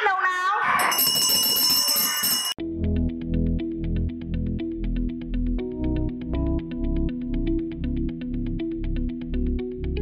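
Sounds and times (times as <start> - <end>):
bell ringing: 0.8 - 2.6
background music with beat: 2.6 - 10.0.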